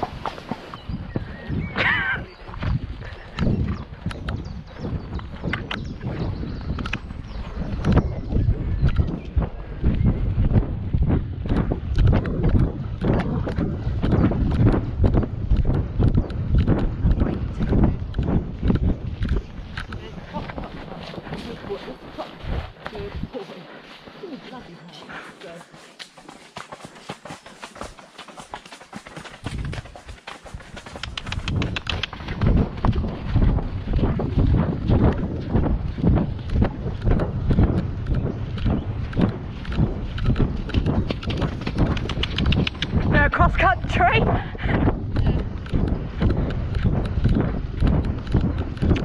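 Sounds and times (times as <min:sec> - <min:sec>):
horse hoofbeats on wet track: 0:00.0 - 0:49.0
wind rumbling on microphone: 0:00.0 - 0:49.0
horse tack rattling: 0:11.3 - 0:23.1, 0:26.0 - 0:44.0, 0:44.7 - 0:49.0.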